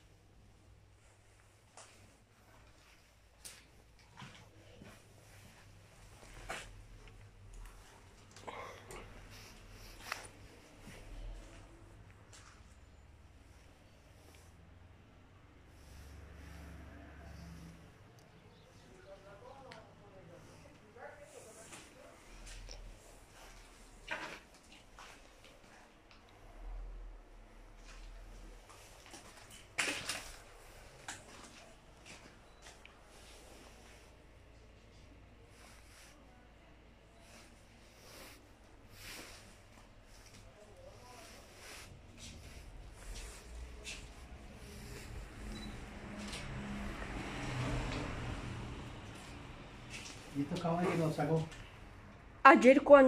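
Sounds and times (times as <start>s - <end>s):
rustling: 37.1s - 47.4s
footsteps: 37.2s - 51.7s.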